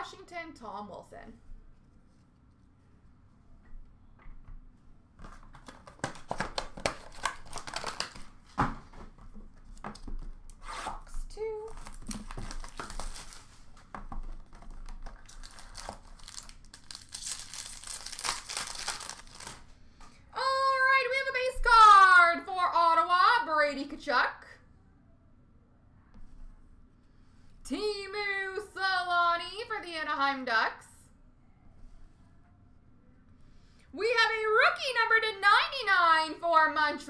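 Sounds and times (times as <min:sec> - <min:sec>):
packaging crinkling and clicking: 0:05.2 - 0:08.5, 0:11.7 - 0:19.6
packaging tearing: 0:05.6 - 0:08.4, 0:10.6 - 0:19.7.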